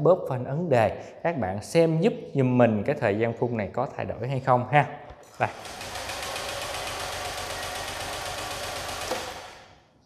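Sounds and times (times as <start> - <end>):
scooter starter cranking engine: 5.4 - 9.8.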